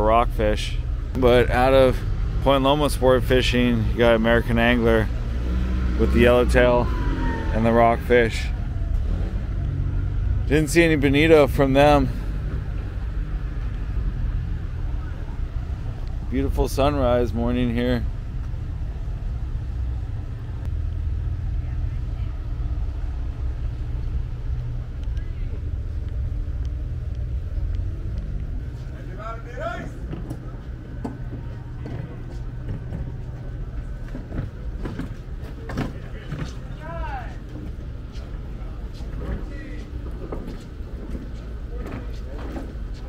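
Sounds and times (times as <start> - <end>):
distant voices: 0.0 - 43.0
low waterfront rumble: 0.0 - 43.0.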